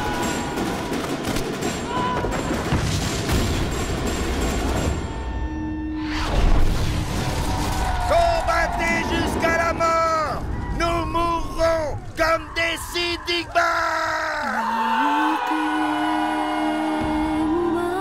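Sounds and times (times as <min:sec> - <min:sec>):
rifle fire volleys: 0:06.2 - 0:12.2
voices shouting or chanting: 0:07.9 - 0:18.0.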